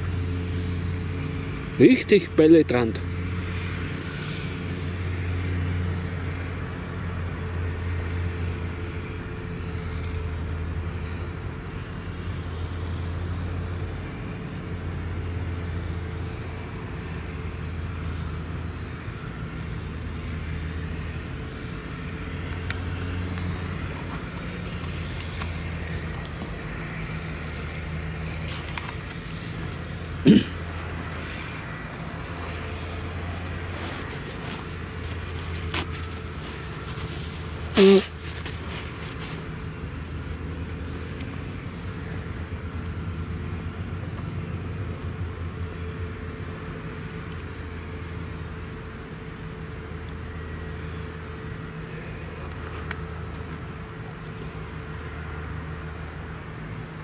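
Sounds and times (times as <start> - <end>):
forage harvester engine drone: 0.0 - 57.0.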